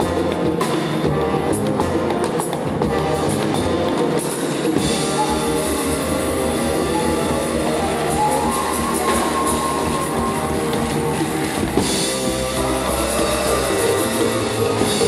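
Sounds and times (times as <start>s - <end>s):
double bass: 0.0s - 15.0s
jazz ensemble playing: 0.0s - 15.0s
trombone: 0.0s - 15.0s
flute: 1.0s - 15.0s.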